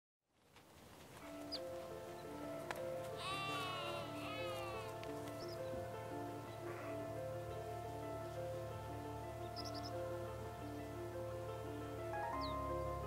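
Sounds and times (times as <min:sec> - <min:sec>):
slow stepped melody: 0:01.3 - 0:13.0
high bleat-like animal squeal: 0:03.2 - 0:04.9.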